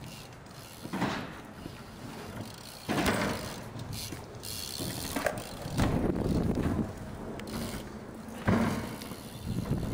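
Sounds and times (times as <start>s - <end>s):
bike tyres rolling on concrete: 0.0s - 9.9s
freewheel clicking: 2.3s - 9.9s.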